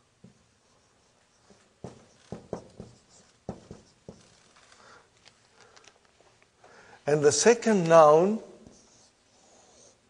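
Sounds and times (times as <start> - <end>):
marker writing on whiteboard: 0.2 - 4.6.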